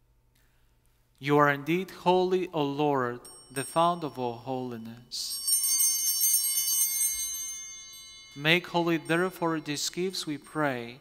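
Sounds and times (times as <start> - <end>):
small hand bells ringing: 3.1 - 11.0.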